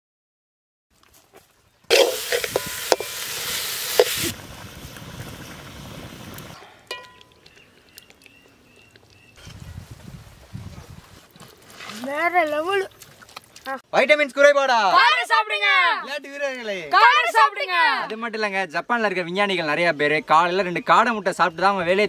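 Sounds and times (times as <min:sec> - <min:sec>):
food frying sizzle: 0:01.9 - 0:07.1
wood fire crackling: 0:01.9 - 0:09.3.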